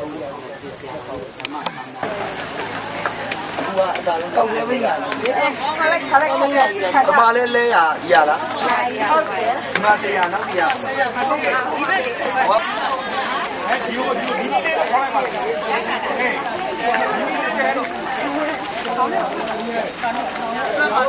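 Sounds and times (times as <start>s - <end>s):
group chatter: 0.0s - 21.0s.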